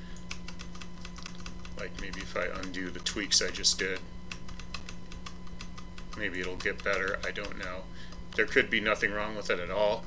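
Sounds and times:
keyboard keys clicking: 0:00.2 - 0:08.5.

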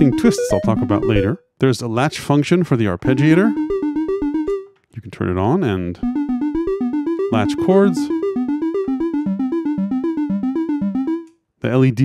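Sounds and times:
synth arpeggio: 0:00.0 - 0:01.4, 0:03.0 - 0:04.7, 0:06.0 - 0:11.3.

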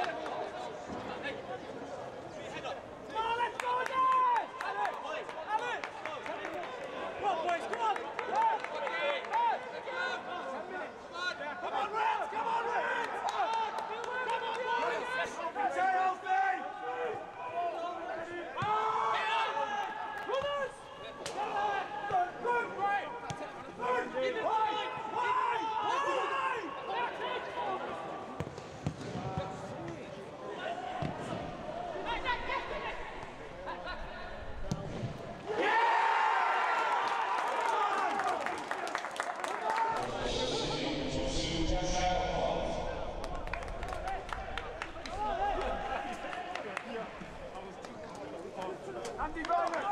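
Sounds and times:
players shouting: 0:11.2 - 0:28.1, 0:30.4 - 0:38.7, 0:39.5 - 0:47.3.

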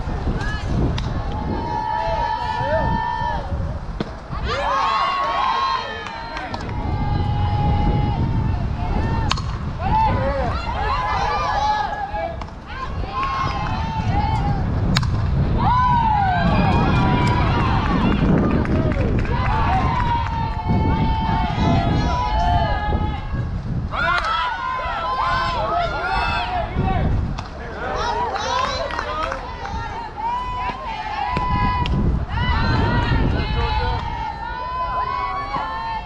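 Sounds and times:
girls calling and chanting: 0:04.2 - 0:14.8, 0:27.8 - 0:36.0
steady low rumble: 0:06.4 - 0:24.0.

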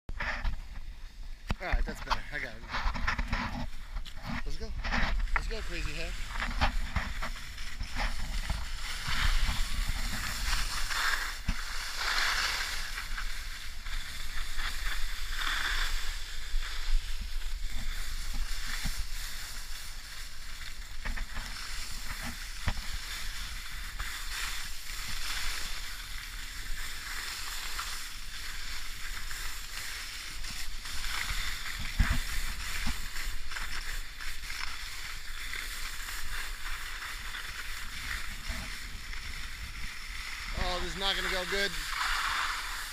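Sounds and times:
wind rumbling on microphone: 0:00.1 - 0:27.2
skis scraping over snow: 0:00.1 - 0:42.9.

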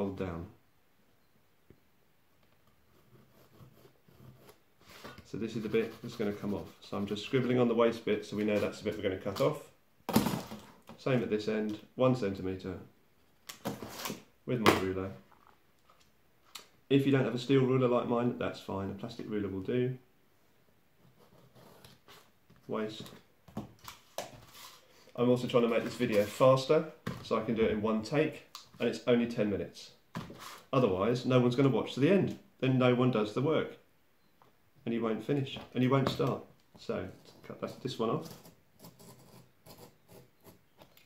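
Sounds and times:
pencil scratching on cardboard: 0:02.9 - 0:07.6, 0:21.0 - 0:22.3, 0:38.2 - 0:40.7.

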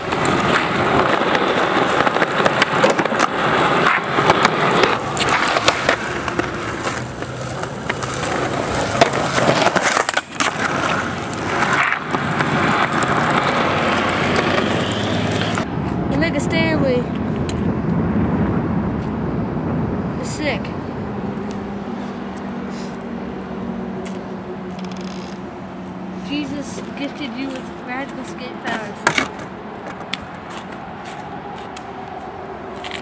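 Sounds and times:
skateboard clacks and knocks: 0:00.0 - 0:15.7, 0:28.2 - 0:30.2
skateboard wheels rolling on concrete: 0:00.0 - 0:33.0.

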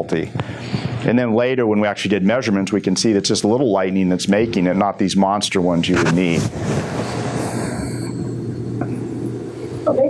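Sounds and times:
low steady hum: 0:00.0 - 0:10.0
steady rushing noise: 0:05.7 - 0:10.0.

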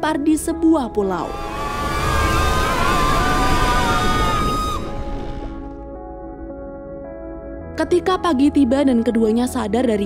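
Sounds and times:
film score music: 0:00.0 - 0:10.0
ocean wave rushing: 0:01.2 - 0:05.7.

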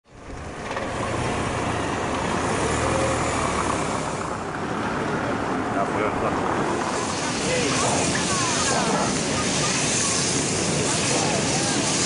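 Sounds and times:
engine rumble: 0:00.0 - 0:12.0.

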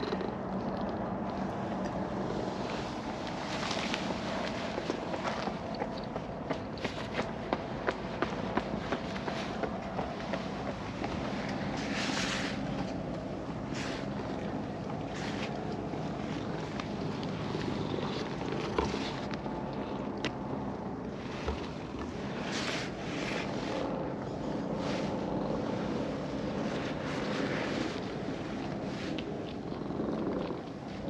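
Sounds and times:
hand rubbing fur: 0:08.5 - 0:17.8, 0:21.1 - 0:23.9, 0:24.6 - 0:30.0
cat purring: 0:20.7 - 0:31.0.

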